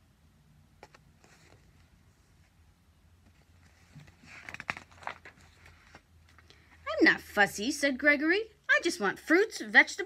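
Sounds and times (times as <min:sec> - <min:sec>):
paper page rustling: 0:03.3 - 0:06.4
woman speaking: 0:06.8 - 0:10.0.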